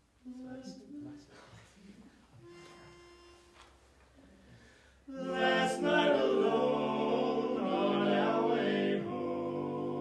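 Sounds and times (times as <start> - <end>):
male vocal quartet singing: 5.1 - 10.0.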